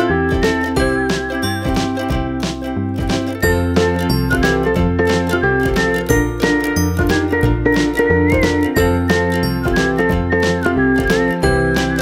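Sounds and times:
bass line: 0.0 - 12.0
whistle-like melody: 0.2 - 2.2, 5.8 - 12.0.

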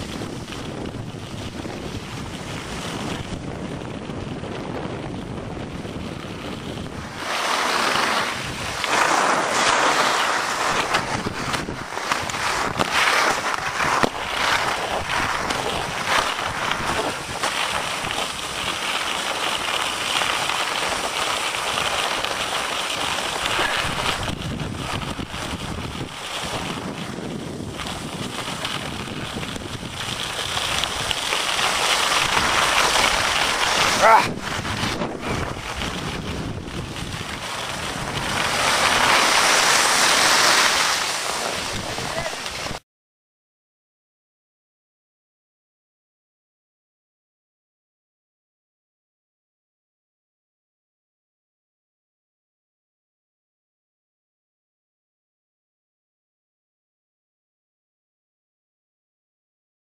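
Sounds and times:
skis hissing over snow: 0.0 - 3.5, 5.8 - 42.8
wind rushing over microphone: 0.0 - 19.7, 23.0 - 42.8.

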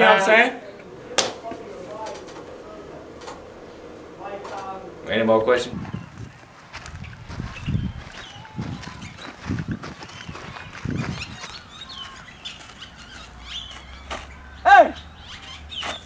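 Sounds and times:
loud rising and falling call: 0.6 - 6.4, 7.0 - 15.8
low thumps: 0.8 - 11.4
small birds chirping: 0.8 - 16.0.

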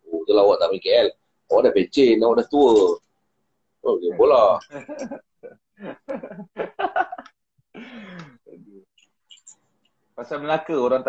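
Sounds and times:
man laughing: 4.1 - 7.3.

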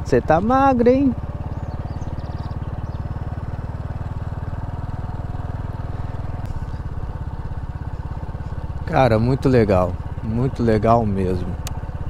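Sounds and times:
scooter engine running: 0.0 - 12.0.

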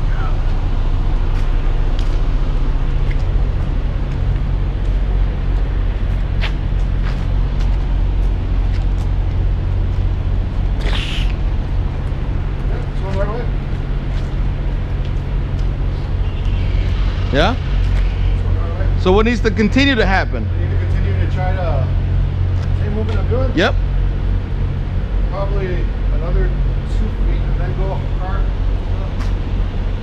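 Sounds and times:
diesel engine idling: 0.0 - 30.0.

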